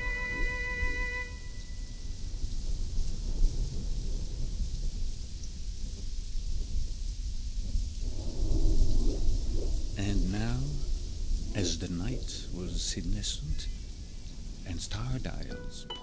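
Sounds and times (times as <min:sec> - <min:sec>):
held chord of steady tones: 0:00.0 - 0:02.2, 0:14.6 - 0:16.0
rain-like hiss: 0:00.0 - 0:16.0
deep continuous rumble: 0:09.0 - 0:15.4.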